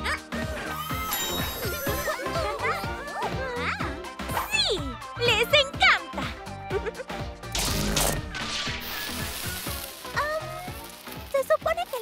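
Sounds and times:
upbeat background music: 0:00.0 - 0:12.0.

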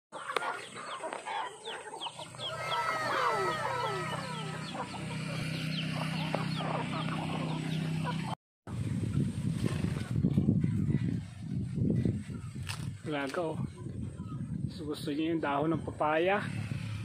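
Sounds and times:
chickens clucking and calling: 0:00.2 - 0:08.4.

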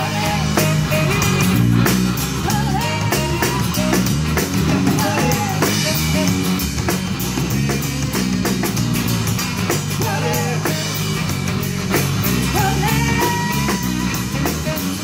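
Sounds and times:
drum kit: 0:00.0 - 0:15.0
electric bass: 0:00.0 - 0:15.0
guitars: 0:00.0 - 0:15.0.

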